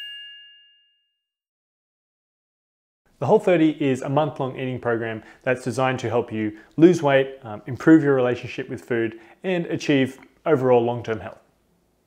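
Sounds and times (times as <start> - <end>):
bell-like jingle chime: 0.0 - 1.2.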